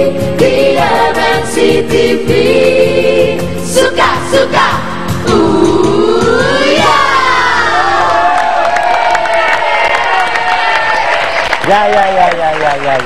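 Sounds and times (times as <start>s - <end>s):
group singing pop song: 0.0s - 8.6s
audience cheering and clapping: 6.6s - 13.0s.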